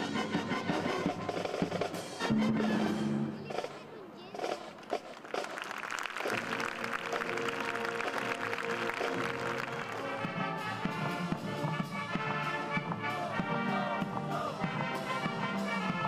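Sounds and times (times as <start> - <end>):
military band playing: 0.0 - 16.0.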